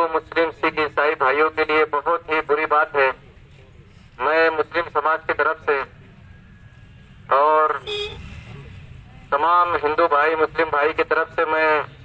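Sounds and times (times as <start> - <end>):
man speaking into a microphone: 0.0 - 6.0, 7.2 - 8.7, 9.3 - 12.0.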